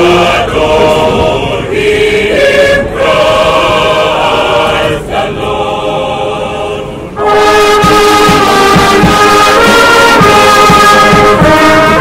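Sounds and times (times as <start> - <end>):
mixed choir singing a hymn: 0.0 - 12.0.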